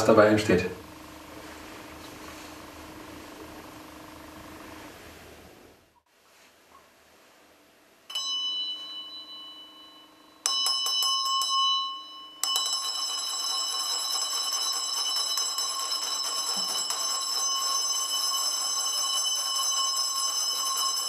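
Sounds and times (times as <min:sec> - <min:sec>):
brass hand bell ringing: 0:08.1 - 0:21.0.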